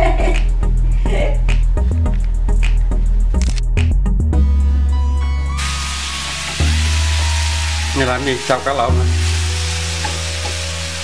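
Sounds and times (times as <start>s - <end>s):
background music: 0.0s - 11.0s
food sizzling in a frying pan: 5.6s - 11.0s.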